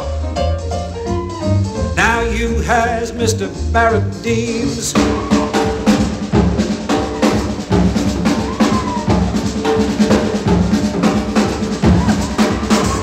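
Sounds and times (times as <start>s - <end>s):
swing jazz drum kit: 0.0s - 13.0s.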